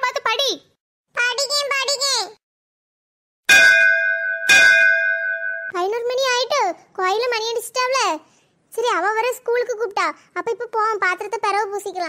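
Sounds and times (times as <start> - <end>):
bell ringing: 3.5 - 5.8.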